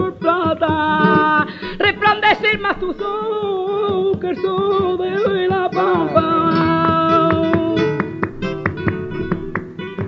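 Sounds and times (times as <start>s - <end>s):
person singing: 0.0s - 8.2s
flamenco guitar playing: 0.0s - 10.0s.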